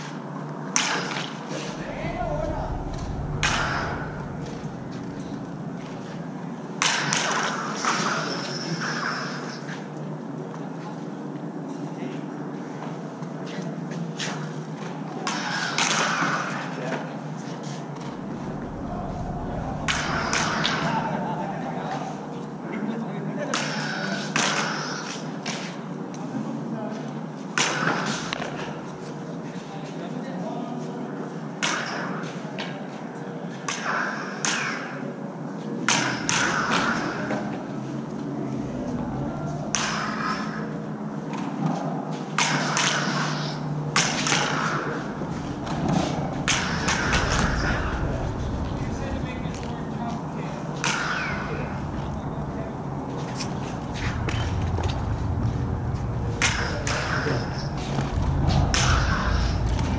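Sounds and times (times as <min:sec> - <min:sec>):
lightsaber hum: 0:01.6 - 0:06.6, 0:17.9 - 0:21.8, 0:44.8 - 0:59.9
lightsaber blades clashing: 0:18.0 - 0:21.3, 0:42.4 - 0:50.0, 0:50.8 - 0:59.9.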